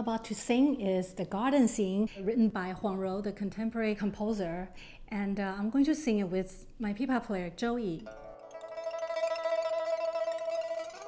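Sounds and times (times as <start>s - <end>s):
pipa playing a high note: 8.0s - 11.0s.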